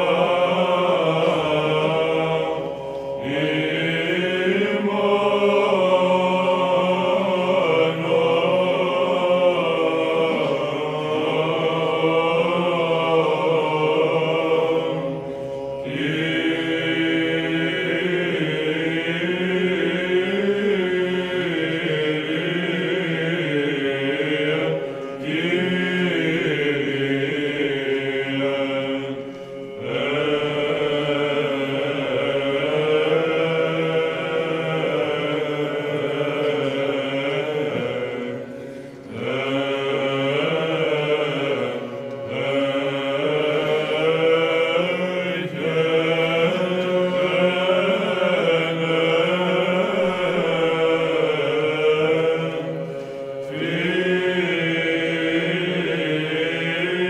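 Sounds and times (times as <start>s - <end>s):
male choir chanting: 0.0s - 57.0s.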